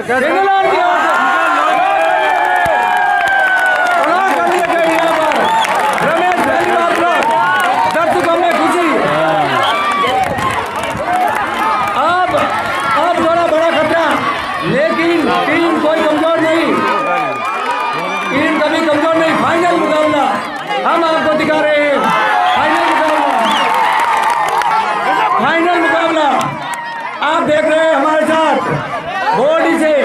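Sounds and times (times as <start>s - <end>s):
crowd shouting: 0.0s - 30.0s.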